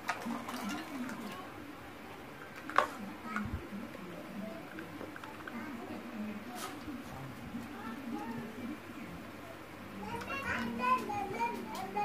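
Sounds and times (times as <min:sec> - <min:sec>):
children chattering and playing: 0:00.3 - 0:12.0.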